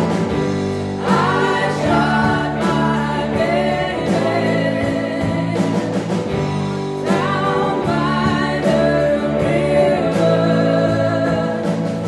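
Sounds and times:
bass guitar: 0.0s - 12.0s
electric guitars: 0.0s - 12.0s
woman singing: 1.0s - 6.1s, 7.0s - 12.0s.

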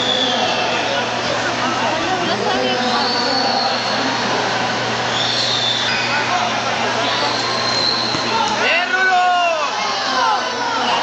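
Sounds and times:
crowd babble in large hall: 0.0s - 11.0s.

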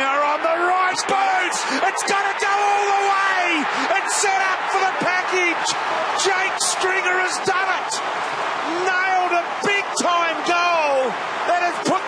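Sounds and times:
stadium crowd roaring and cheering: 0.0s - 12.0s.

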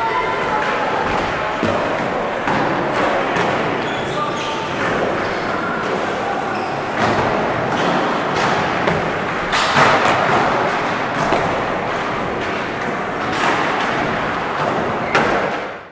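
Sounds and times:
skateboard wheels rumbling: 0.0s - 15.9s
skateboards thudding on ramp: 0.5s - 3.9s, 6.9s - 15.8s.

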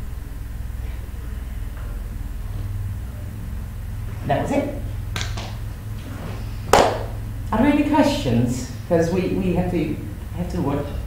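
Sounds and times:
steady low hum: 0.0s - 11.0s
sharp tap: 6.7s - 7.1s.

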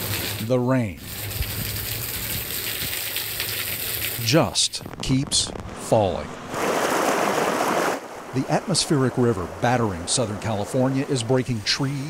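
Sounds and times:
heavy rain: 0.0s - 0.4s, 1.0s - 12.0s
water gushing from drain spout: 1.0s - 4.3s.

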